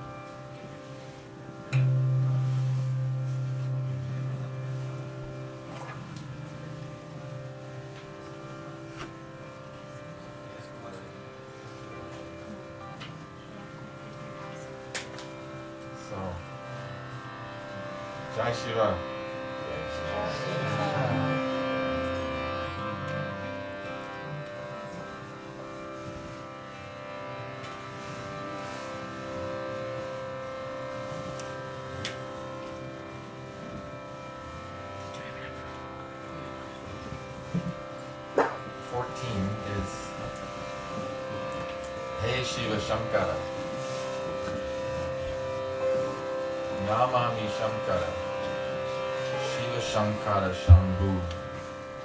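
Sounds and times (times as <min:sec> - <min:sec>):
instrumental drone of held notes: 0:00.0 - 0:52.0.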